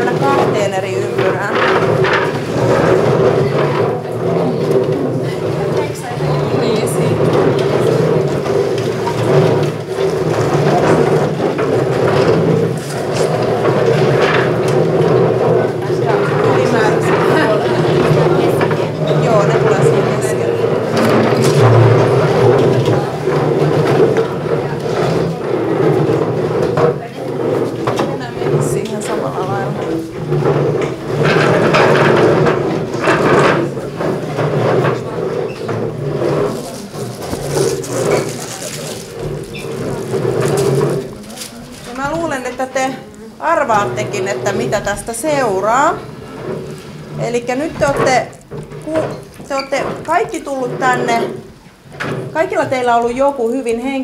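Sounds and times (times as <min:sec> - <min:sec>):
crowd hubbub: 0:00.0 - 0:54.0
wooden chairs scraping on floor: 0:00.0 - 0:54.0.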